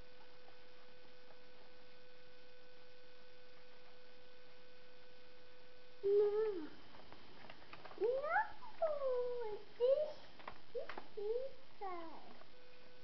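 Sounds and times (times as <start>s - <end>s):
steady hum: 0.0s - 13.0s.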